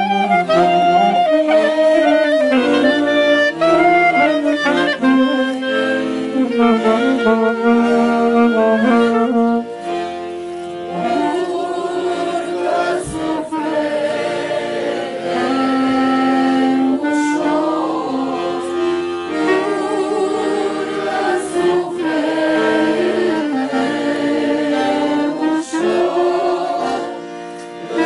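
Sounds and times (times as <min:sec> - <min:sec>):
accordion: 0:00.0 - 0:28.0
clarinet: 0:00.0 - 0:28.0
group of voices singing: 0:00.0 - 0:28.0.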